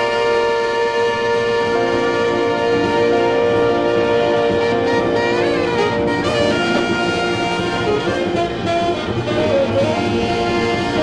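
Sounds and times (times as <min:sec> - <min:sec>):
jazz horn section: 0:00.0 - 0:11.0.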